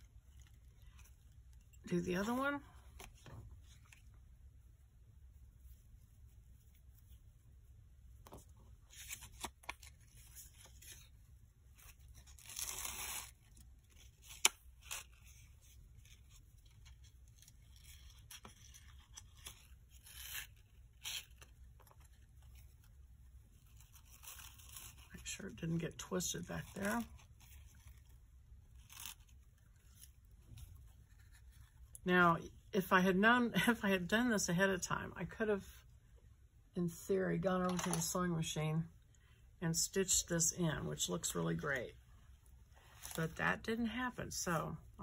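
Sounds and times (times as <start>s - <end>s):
ribbon rustling through card: 0.0s - 4.2s, 5.4s - 32.0s, 37.6s - 38.1s, 42.4s - 43.4s.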